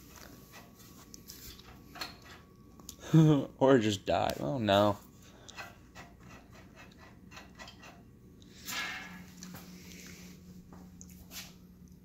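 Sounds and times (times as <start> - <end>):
fluorescent light ballast hum: 0.0 - 12.0.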